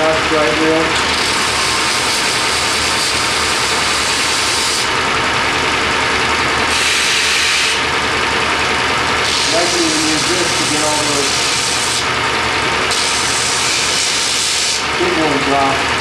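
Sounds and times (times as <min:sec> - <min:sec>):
belt grinder motor running: 0:00.0 - 0:16.0
blade grinding on belt: 0:00.8 - 0:05.1, 0:06.7 - 0:07.9, 0:09.1 - 0:12.2, 0:12.8 - 0:15.4.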